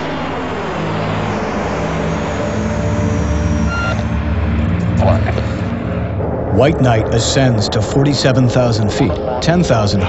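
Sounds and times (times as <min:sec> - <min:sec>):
thin engine whine: 0:00.0 - 0:07.8
jet engines rumbling: 0:00.0 - 0:10.0.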